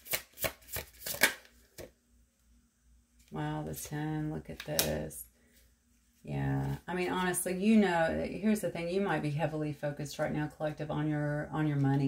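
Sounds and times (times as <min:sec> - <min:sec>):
cards being shuffled: 0:00.0 - 0:01.9.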